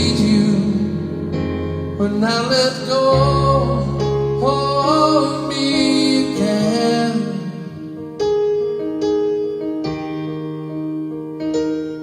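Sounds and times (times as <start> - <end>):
man singing: 0.0 - 7.8.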